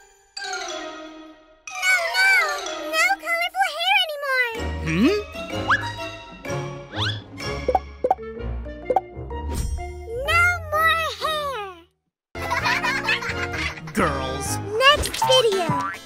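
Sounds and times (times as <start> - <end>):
playful children's music: 0.0 - 16.0.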